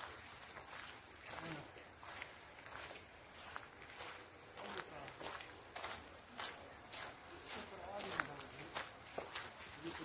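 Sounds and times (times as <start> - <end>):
footsteps on gravel: 0.0 - 10.0
faint voices: 1.2 - 2.2, 3.4 - 10.0.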